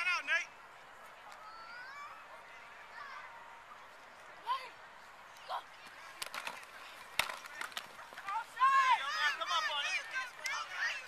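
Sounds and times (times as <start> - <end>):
helmets and pads clacking: 5.8 - 11.0.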